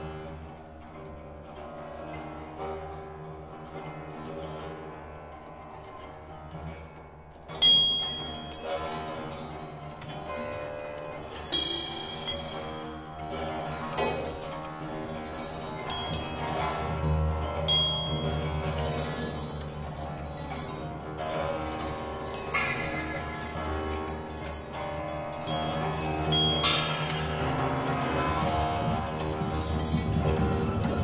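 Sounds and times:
cymbal ringing: 7.5s - 31.0s
small bells ringing: 7.5s - 31.0s
steady low drone: 13.0s - 31.0s.

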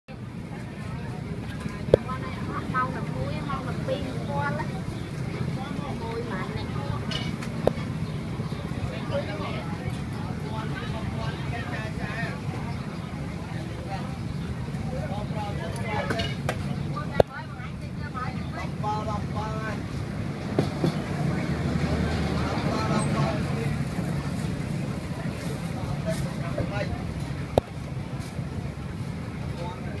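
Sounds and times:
people talking: 0.1s - 30.0s
street traffic rumble: 0.1s - 30.0s.

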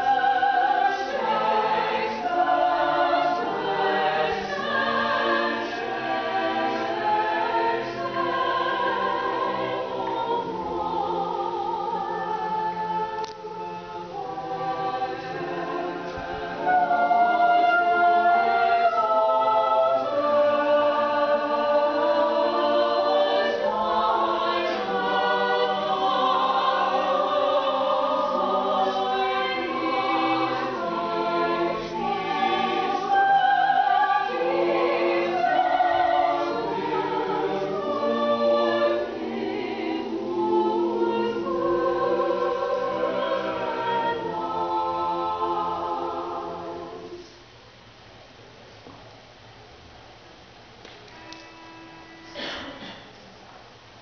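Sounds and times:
choir singing unaccompanied: 0.0s - 47.4s.

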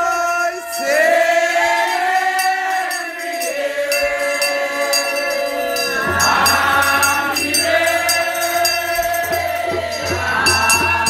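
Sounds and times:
congregation singing a hymn: 0.0s - 11.0s
tambourine jingling: 0.0s - 11.0s.

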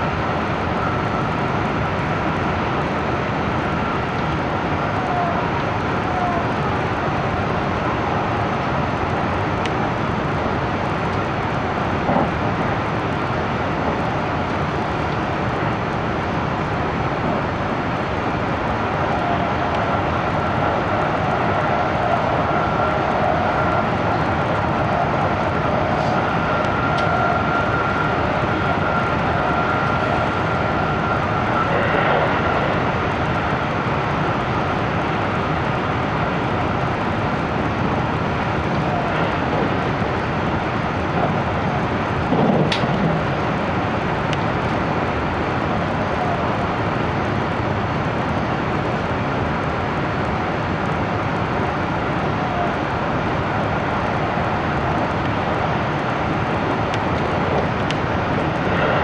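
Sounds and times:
faint steady whine: 0.0s - 59.0s
train wheels rumbling on rail: 0.0s - 59.0s.

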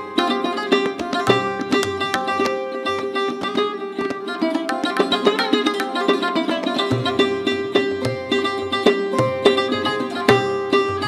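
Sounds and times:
tabla low drum tones: 0.0s - 5.8s, 6.6s - 11.0s
sarod plucked melody: 0.0s - 11.0s.

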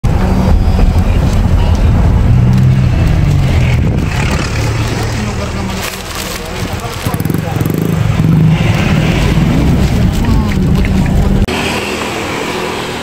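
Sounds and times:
car engine rumble: 0.0s - 13.0s
road noise inside car: 0.0s - 13.0s.

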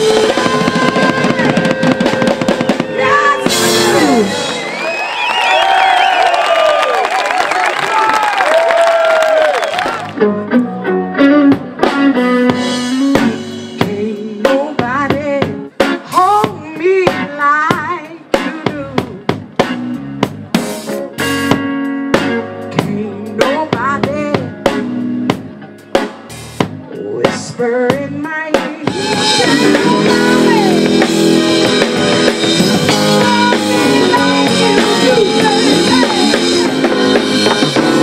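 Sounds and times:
woman singing: 0.0s - 1.8s, 2.9s - 4.3s, 12.6s - 19.2s, 22.7s - 24.6s, 26.9s - 31.2s, 32.9s - 36.9s
drum kit hits: 0.0s - 4.8s
bass and guitar: 0.0s - 6.2s, 9.2s - 38.0s
audience cheering and clapping: 2.8s - 10.2s.

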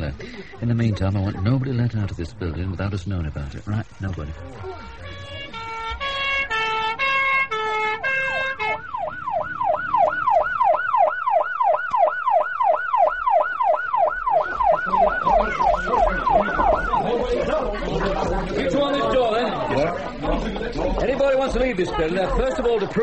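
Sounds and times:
emergency vehicle siren: 4.6s - 17.4s.

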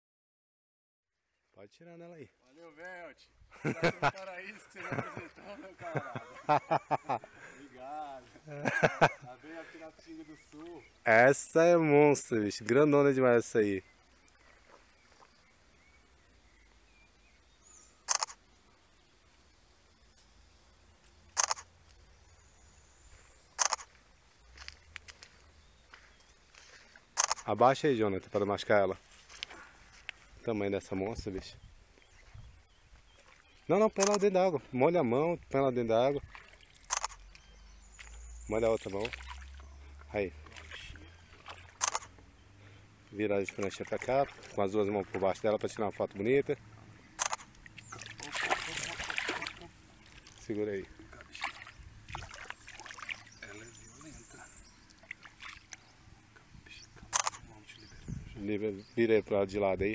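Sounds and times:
faint water movement: 2.4s - 59.1s
faint bird chirps: 13.4s - 27.6s, 36.9s - 43.3s, 49.5s - 59.1s
splash of river water: 36.2s - 42.1s, 43.4s - 45.2s, 47.6s - 50.5s, 51.2s - 54.0s, 55.0s - 55.8s.

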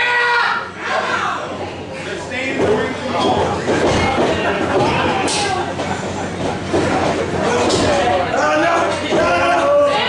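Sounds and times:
crowd chattering and shouting: 0.0s - 10.0s.

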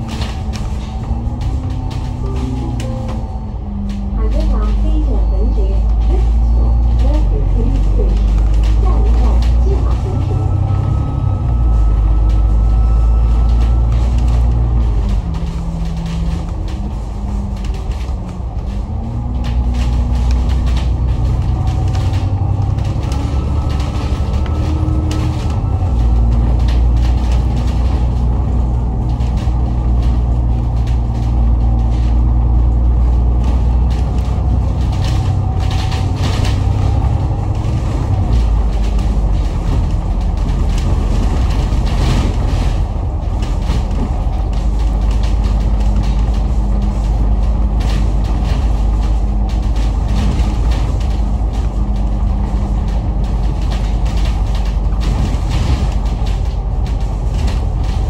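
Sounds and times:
bus engine drone: 0.0s - 58.0s
interior rattles: 0.0s - 58.0s
road noise: 0.0s - 58.0s.

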